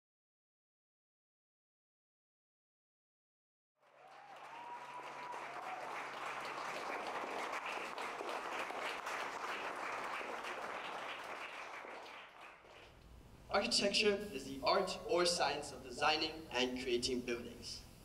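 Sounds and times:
audience applauding: 3.8s - 13.0s.

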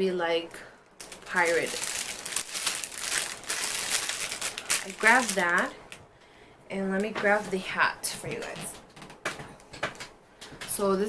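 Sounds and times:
plastic packaging crinkling: 0.8s - 6.0s.

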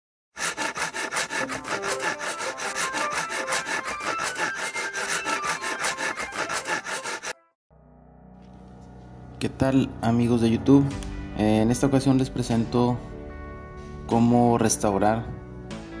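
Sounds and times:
rapid scraping strokes: 0.4s - 7.4s.

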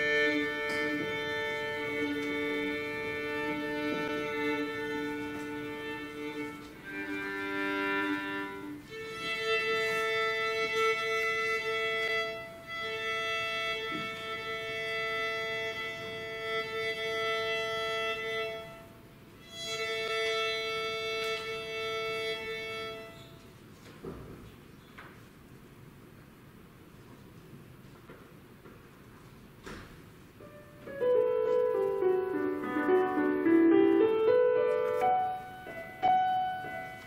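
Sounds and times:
violin being tuned: 0.0s - 23.5s, 30.4s - 37.0s.

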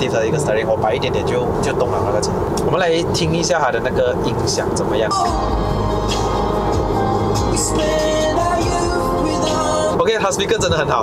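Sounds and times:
music in car cabin: 3.4s - 11.0s.

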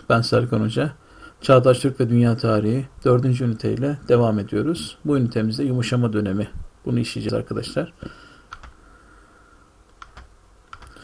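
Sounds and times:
faint steady whine: 0.0s - 11.0s
computer keyboard clicks: 8.5s - 8.8s, 9.9s - 11.0s.

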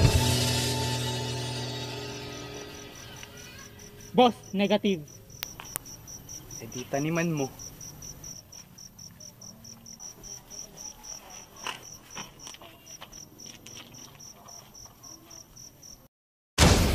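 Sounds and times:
crickets chirping: 1.2s - 16.1s
faint clicks: 5.4s - 6.0s.

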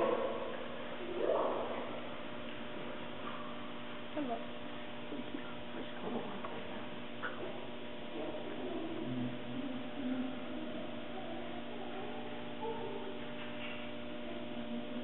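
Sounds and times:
steady room hum: 0.0s - 15.0s.

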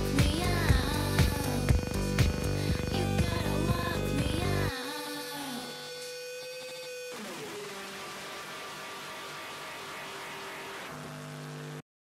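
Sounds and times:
steady wash of noise and hum: 0.0s - 4.7s
synth tone sliding down: 0.0s - 4.7s.

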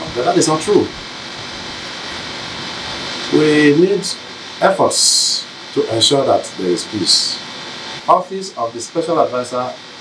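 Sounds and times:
room noise hiss: 0.0s - 10.0s.

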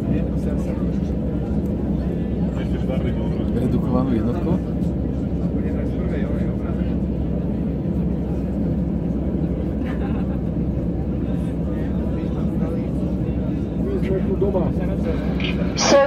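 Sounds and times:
jet engine rumble in cabin: 0.0s - 16.0s.

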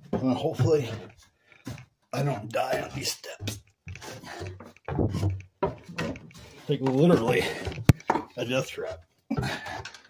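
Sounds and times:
footsteps on wooden stairs: 0.0s - 9.9s.

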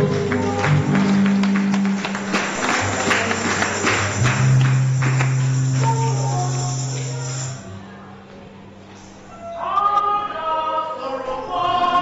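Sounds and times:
low bass keyboard notes: 0.0s - 8.8s
jingling percussion hits: 1.9s - 7.8s.

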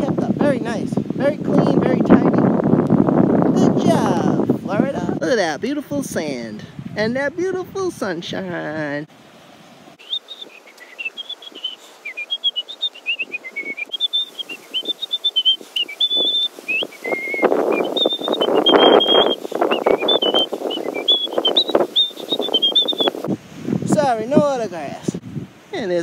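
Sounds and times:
high whistled tune: 10.0s - 23.2s.

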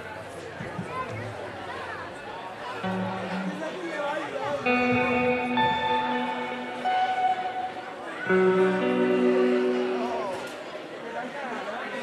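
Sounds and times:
band playing sustained notes: 2.8s - 11.1s.

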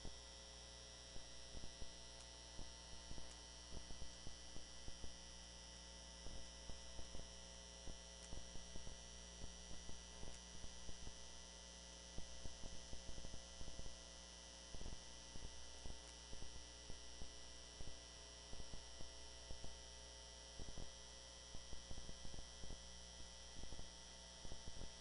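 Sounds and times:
electrical mains hum: 0.0s - 25.0s.

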